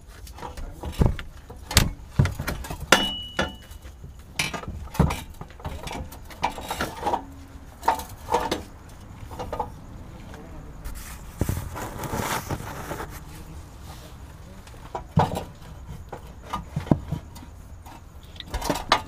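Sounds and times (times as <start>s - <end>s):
hand tools clinking and knocking: 0.1s - 13.4s, 14.2s - 19.0s
high metallic ringing tone: 2.9s - 4.0s.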